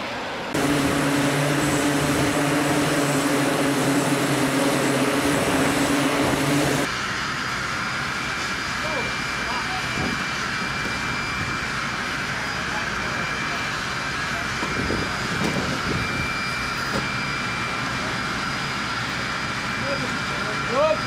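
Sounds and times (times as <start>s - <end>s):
high steady engine whine: 0.0s - 21.0s
jet engine rushing hum: 0.0s - 21.0s
faint crew voices: 12.2s - 15.7s.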